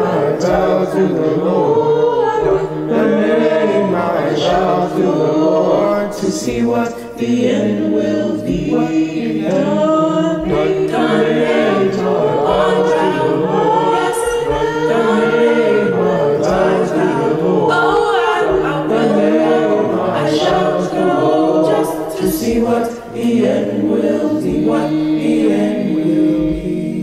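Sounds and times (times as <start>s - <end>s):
youth choir singing a cappella: 0.0s - 27.0s.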